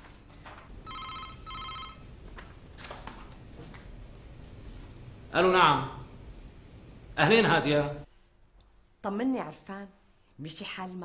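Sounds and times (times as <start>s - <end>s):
mobile phone two-tone ring: 0.9s - 2.0s.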